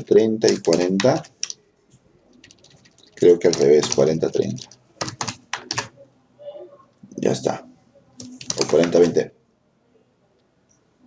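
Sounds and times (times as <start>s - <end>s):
computer keyboard typing: 0.4s - 1.6s, 2.3s - 6.0s, 8.2s - 9.2s.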